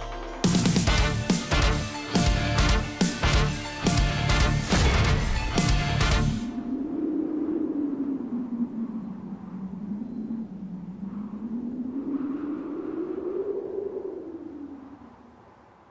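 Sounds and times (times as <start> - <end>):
low wavering drone tone: 5.3 - 14.8.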